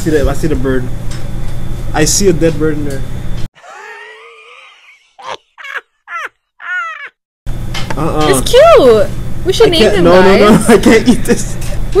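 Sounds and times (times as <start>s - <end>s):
person short rising cries: 3.6s - 7.2s.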